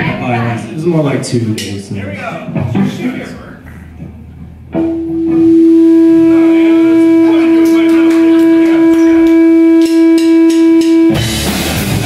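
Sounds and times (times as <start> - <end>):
loud held amplified note: 4.8 - 11.4.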